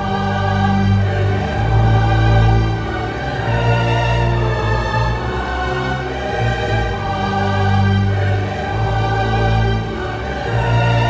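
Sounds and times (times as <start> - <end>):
choir voices: 0.0 - 11.0
strings and horns: 0.0 - 11.0.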